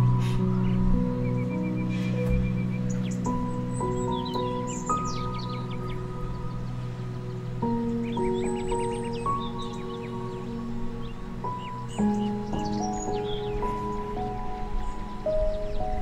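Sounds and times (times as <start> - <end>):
birds chirping: 0.0 - 16.0
slow calm background music: 0.0 - 16.0.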